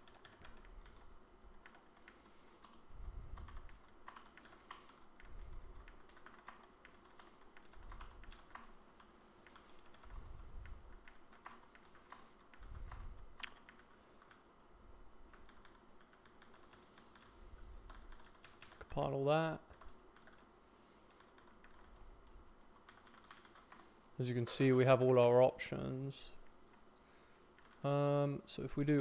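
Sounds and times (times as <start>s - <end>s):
computer keyboard typing: 0.0s - 14.5s, 15.3s - 19.1s, 19.7s - 24.0s, 27.5s - 27.9s.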